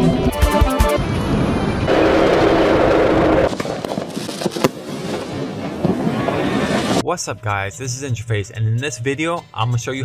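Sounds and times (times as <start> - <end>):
firework rushing noise: 1.8 - 7.0
firework crackles and pops: 1.9 - 7.0.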